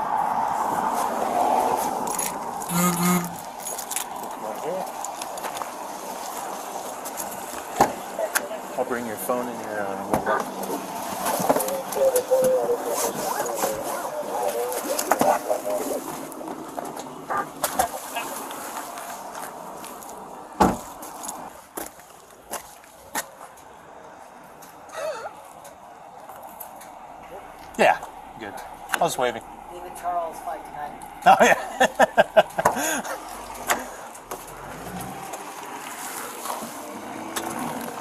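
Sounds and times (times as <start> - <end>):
indistinct voices: 0.6 - 18.5, 24.9 - 35.6.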